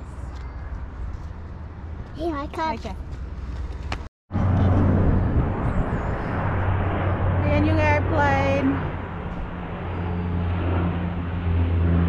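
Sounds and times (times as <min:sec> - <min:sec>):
aeroplane flying overhead: 0:00.0 - 0:12.0
wind on microphone: 0:03.8 - 0:12.0.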